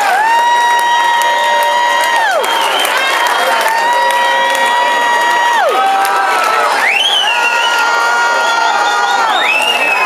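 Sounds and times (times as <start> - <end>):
audience cheering: 0.0 - 10.0.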